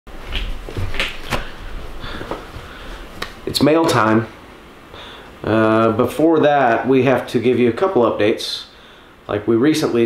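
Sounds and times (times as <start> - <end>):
rustling: 0.1 - 3.4.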